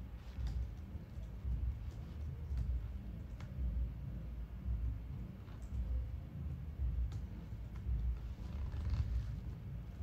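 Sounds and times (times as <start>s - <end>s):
computer keys clicking: 0.2s - 3.8s, 5.5s - 6.0s.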